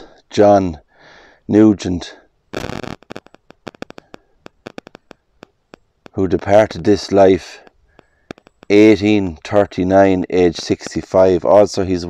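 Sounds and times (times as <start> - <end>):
sharp clicks and crackles: 2.5 - 9.0.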